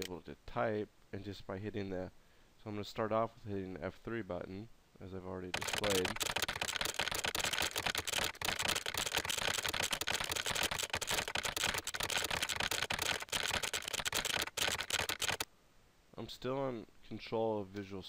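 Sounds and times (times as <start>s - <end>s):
rapid keyboard typing clicks: 5.6s - 15.5s.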